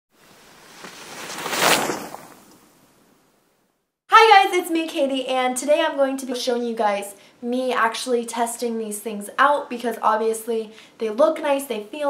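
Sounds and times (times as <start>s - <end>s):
rushing whoosh: 0.2s - 2.8s.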